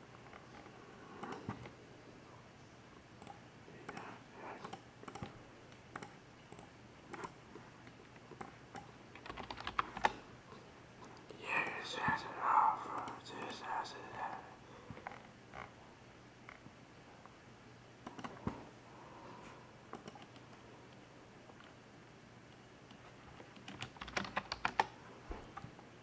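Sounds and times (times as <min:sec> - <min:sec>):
faint voice: 0:11.4 - 0:14.6.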